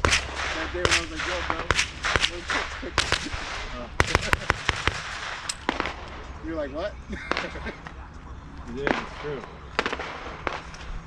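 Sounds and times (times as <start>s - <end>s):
gunshots: 0.0s - 7.8s, 8.8s - 11.0s.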